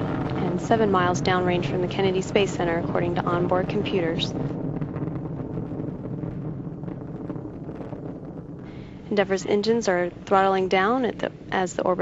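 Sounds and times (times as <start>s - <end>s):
rocket launch roar: 0.0s - 11.6s.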